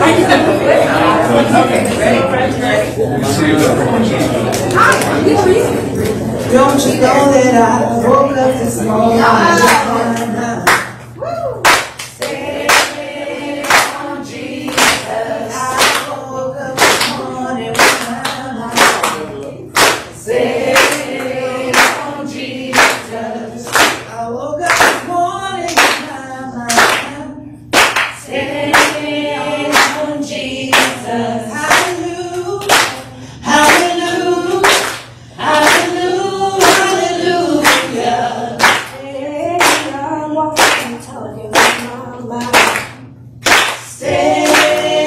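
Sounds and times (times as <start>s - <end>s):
congregation singing gospel song: 0.0s - 11.1s, 11.9s - 45.0s
hands clapping in time: 42.4s - 43.8s.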